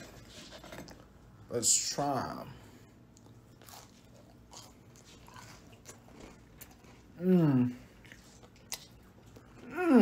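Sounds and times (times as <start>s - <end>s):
person chewing a cookie: 2.9s - 10.0s.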